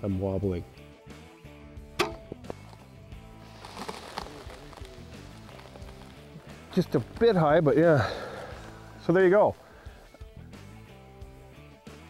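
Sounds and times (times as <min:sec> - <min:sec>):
crossbow string snap: 0:02.0 - 0:02.5.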